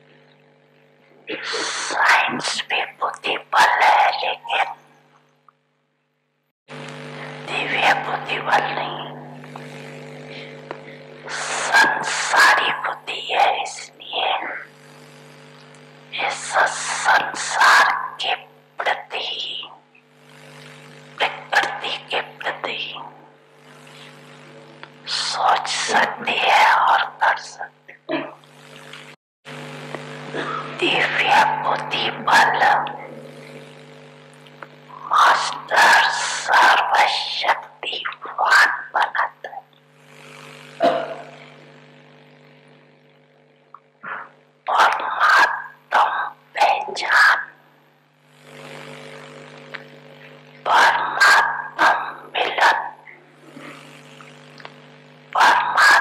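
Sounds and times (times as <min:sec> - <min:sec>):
low hum: 0:00.0 - 0:56.0.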